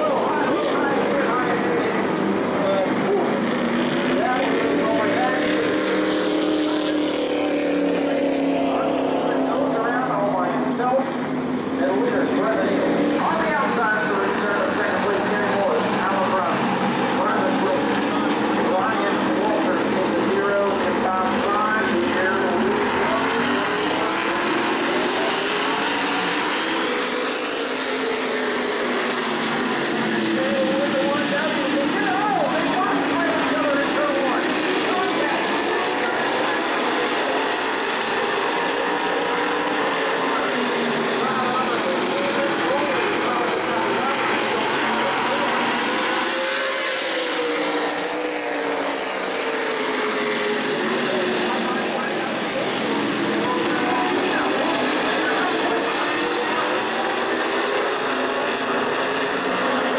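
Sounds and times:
racing car engines: 0:00.0 - 0:59.9.

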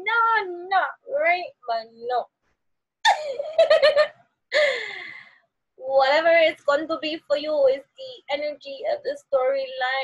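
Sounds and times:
woman laughing: 0:03.1 - 0:05.0
breathy gasping sigh: 0:04.5 - 0:05.4.

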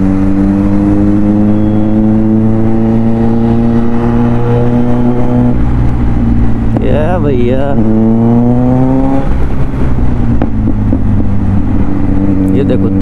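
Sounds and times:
motorcycle engine accelerating: 0:00.0 - 0:13.0.

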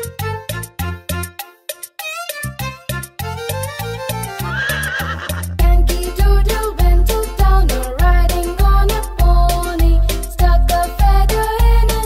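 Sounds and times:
upbeat children's music: 0:00.0 - 0:12.0
cartoon horse whinny: 0:04.4 - 0:05.6.

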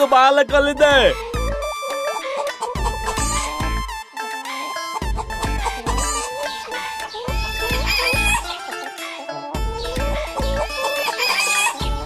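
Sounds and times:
hen calling: 0:00.0 - 0:12.0
music with bass beat: 0:00.5 - 0:01.8, 0:02.5 - 0:04.2, 0:04.8 - 0:08.7, 0:09.6 - 0:10.8, 0:11.7 - 0:12.0.

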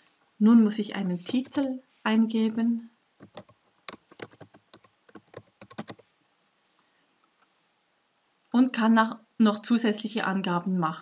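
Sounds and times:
keyboard typing: 0:03.2 - 0:06.0.

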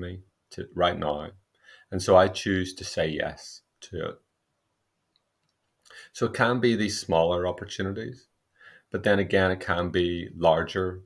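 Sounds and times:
person speaking: 0:00.0 - 0:04.2, 0:05.8 - 0:08.3, 0:08.9 - 0:11.0
soft breath: 0:01.5 - 0:02.0, 0:05.8 - 0:06.2, 0:08.5 - 0:09.0.

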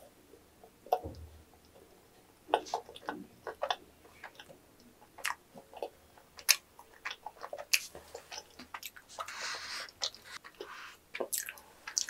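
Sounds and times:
mouth chewing clicks and smacks: 0:02.5 - 0:12.0.

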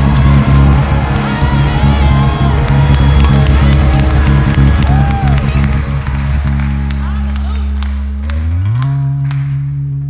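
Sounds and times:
electric bass guitar sliding note: 0:00.0 - 0:10.0.

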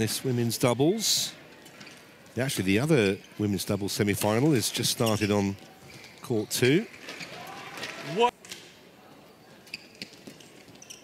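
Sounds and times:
indoor crowd hum: 0:00.0 - 0:11.0.

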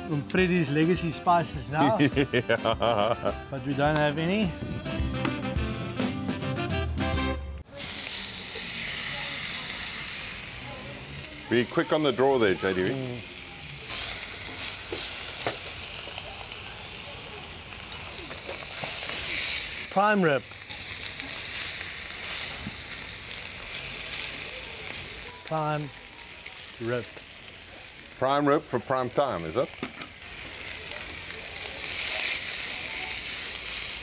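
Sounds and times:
steaks sizzling on griddle: 0:00.0 - 0:05.0, 0:07.7 - 0:34.0
upbeat background music: 0:00.0 - 0:07.6.

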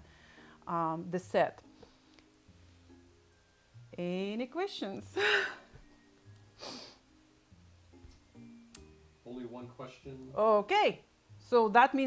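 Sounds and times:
woman breathing out: 0:00.0 - 0:00.6, 0:05.2 - 0:05.7, 0:06.6 - 0:07.0
faint background music: 0:00.0 - 0:12.0.

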